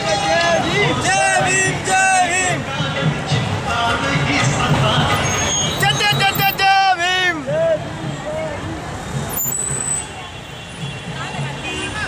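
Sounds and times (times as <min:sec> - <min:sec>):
crowd voices: 0:00.0 - 0:12.0
road traffic: 0:00.0 - 0:12.0.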